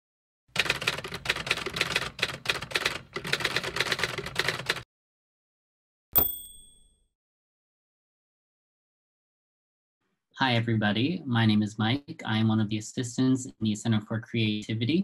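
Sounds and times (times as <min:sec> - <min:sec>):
typewriter keys clattering: 0:00.6 - 0:04.8
typewriter bell ding: 0:06.2 - 0:07.1.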